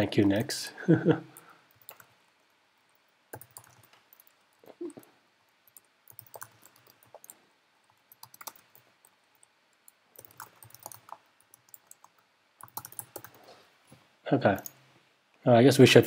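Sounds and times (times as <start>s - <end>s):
computer keyboard typing: 0.0s - 0.5s, 1.4s - 2.2s, 3.3s - 4.4s, 5.7s - 13.5s, 14.6s - 14.8s.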